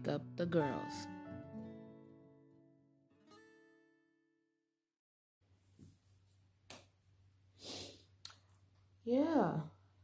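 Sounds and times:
acoustic guitar chord strummed: 0.0s - 4.3s.

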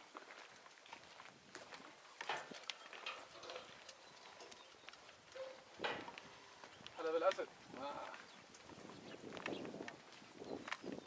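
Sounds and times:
footstep clicks and scuffs: 0.0s - 11.0s.

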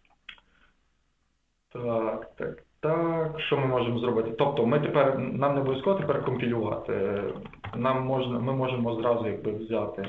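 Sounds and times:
man speaking: 1.8s - 10.0s.

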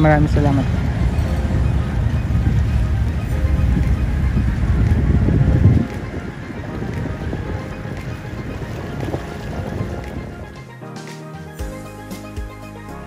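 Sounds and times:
wind buffeting microphone: 0.0s - 10.7s.

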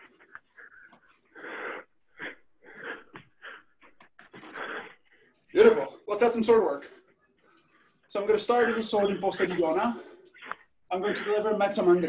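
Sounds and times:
man breathing hard: 0.0s - 5.5s.

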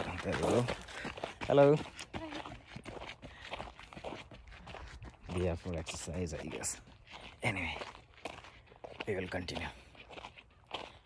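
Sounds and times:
soft footsteps outdoors: 0.0s - 11.0s.

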